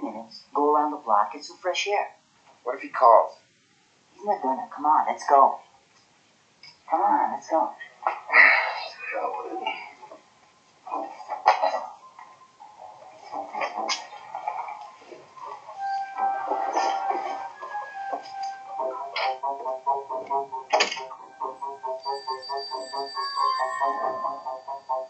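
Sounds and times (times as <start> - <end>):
music with fast pulse: 12.9 - 25.0
footsteps: 13.1 - 21.2
door shutting: 20.7 - 21.2.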